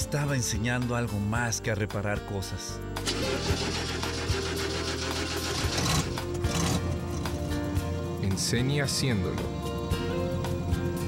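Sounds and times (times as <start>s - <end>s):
background music: 0.0s - 11.0s
truck engine starting and running: 3.0s - 8.2s.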